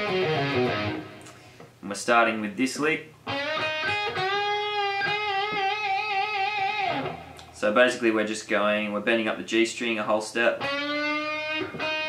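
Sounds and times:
electric guitar lead with bent note: 0.0s - 1.2s, 3.3s - 7.5s, 10.6s - 12.0s.

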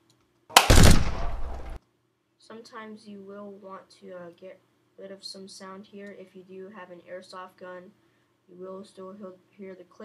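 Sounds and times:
machine-gun burst: 0.6s - 1.8s.

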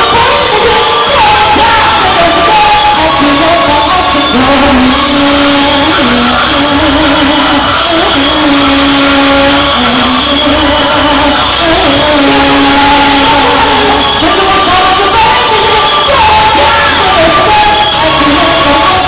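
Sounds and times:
distorted live pop music: 0.0s - 19.0s.

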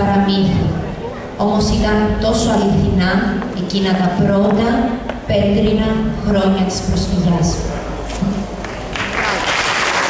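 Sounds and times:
audience applause: 8.6s - 10.0s.

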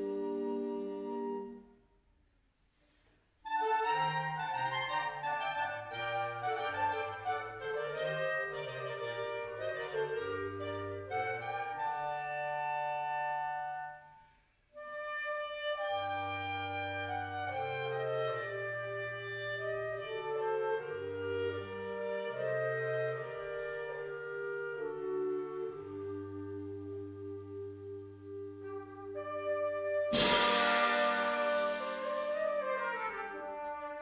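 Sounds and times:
wind band playing held chords: 15.4s - 34.0s.

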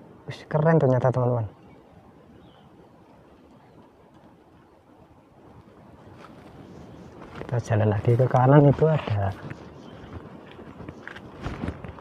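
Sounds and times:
footsteps on dry dirt: 5.6s - 12.0s.

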